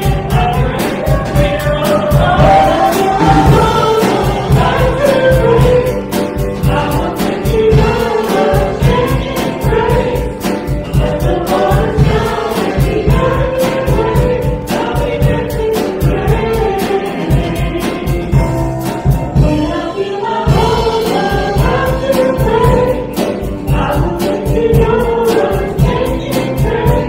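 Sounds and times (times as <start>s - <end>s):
acoustic guitar: 0.0s - 19.8s
keyboard: 0.0s - 27.0s
man and woman singing together: 0.0s - 27.0s
steady beat: 2.6s - 5.6s.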